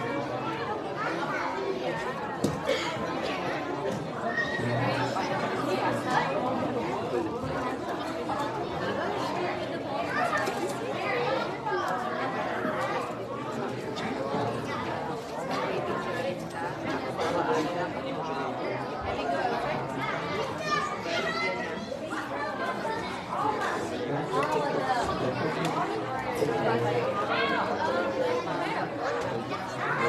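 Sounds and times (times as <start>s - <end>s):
chatter of children and adults: 0.0s - 30.0s.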